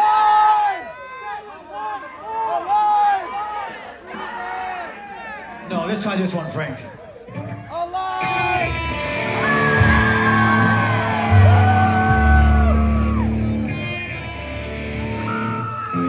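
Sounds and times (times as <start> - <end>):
live rock band playing loudly: 8.2 - 16.0
heavy low bass notes: 8.5 - 15.3.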